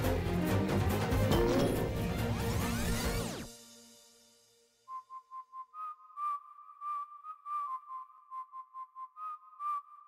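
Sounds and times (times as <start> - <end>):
person whistling a tune: 4.9 - 10.0.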